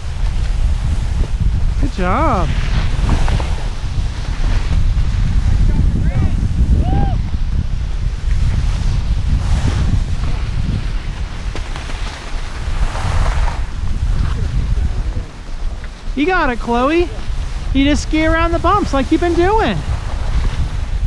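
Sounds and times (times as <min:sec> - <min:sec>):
skis scraping on snow: 0:00.0 - 0:06.6, 0:07.5 - 0:21.0
wind buffeting microphone: 0:00.0 - 0:21.0.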